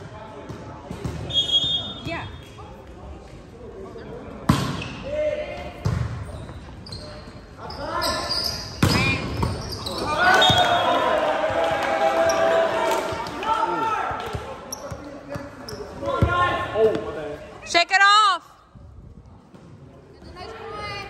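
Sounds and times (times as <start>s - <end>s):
people shouting and cheering: 10.0s - 14.4s.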